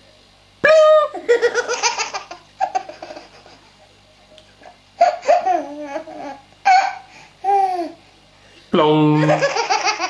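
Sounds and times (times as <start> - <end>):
baby laughing: 1.1 - 3.7, 5.0 - 8.0, 9.2 - 10.0.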